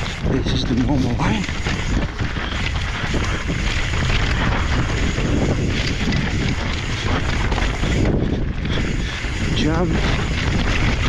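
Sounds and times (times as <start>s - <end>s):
bike tyres rolling over dirt and rock: 0.0s - 11.0s
wind rushing over microphone: 0.0s - 11.0s.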